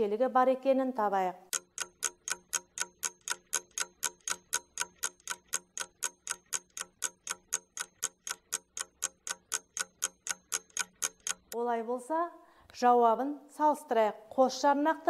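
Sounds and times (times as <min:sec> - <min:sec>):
ticking clock: 0:01.5 - 0:11.6.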